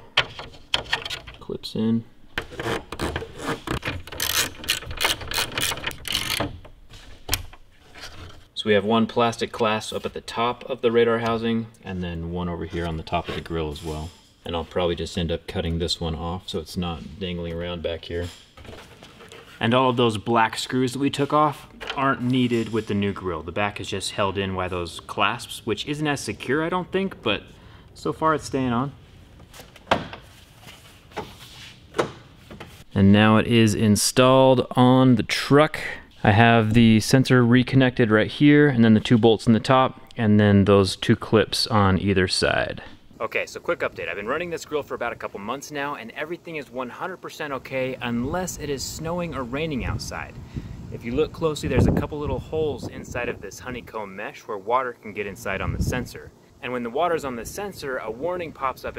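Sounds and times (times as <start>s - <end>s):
plastic parts clicking and rattling: 0.1s - 1.4s, 2.4s - 8.4s.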